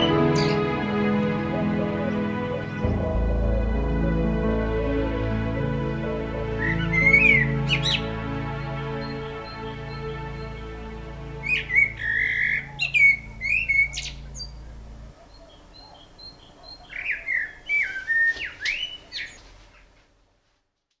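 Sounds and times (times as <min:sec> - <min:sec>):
held background music notes: 0:00.0 - 0:15.2
blackbird singing: 0:06.1 - 0:10.6, 0:11.4 - 0:19.4.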